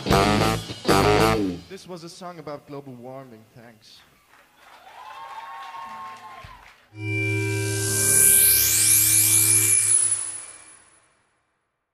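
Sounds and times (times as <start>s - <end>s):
held synthesizer chord: 7.0s - 10.9s
low hum: 7.0s - 10.9s
shimmering high sweep: 7.0s - 11.2s.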